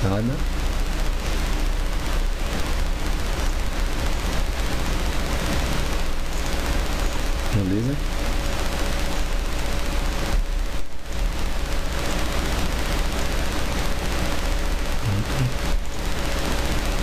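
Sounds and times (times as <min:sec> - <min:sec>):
crackling microphone hiss: 0:00.0 - 0:17.0
faint steady hum: 0:00.0 - 0:17.0
person murmuring: 0:15.0 - 0:15.7.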